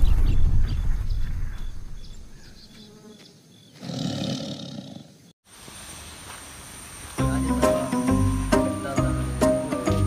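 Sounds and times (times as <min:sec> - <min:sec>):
tiger roar: 0:03.8 - 0:05.2.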